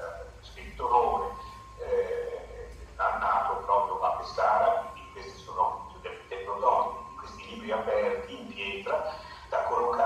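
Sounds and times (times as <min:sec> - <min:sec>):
man speaking through loudspeakers: 0:00.0 - 0:10.0.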